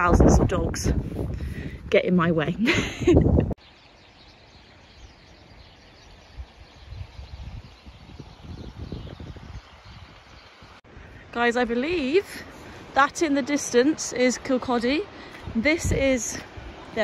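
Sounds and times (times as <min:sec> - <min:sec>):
wind gusts on microphone: 0:00.0 - 0:03.6, 0:04.9 - 0:17.0
person laughing: 0:02.6 - 0:03.5.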